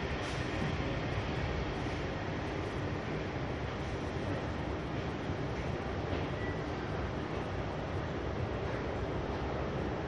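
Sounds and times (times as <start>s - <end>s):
train running on guideway: 0.0s - 10.0s.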